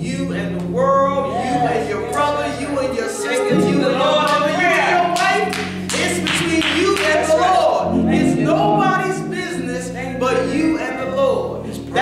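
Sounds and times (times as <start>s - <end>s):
gospel worship singing: 0.0s - 12.0s
sustained organ chords: 0.0s - 12.0s
hand clapping: 5.2s - 7.2s.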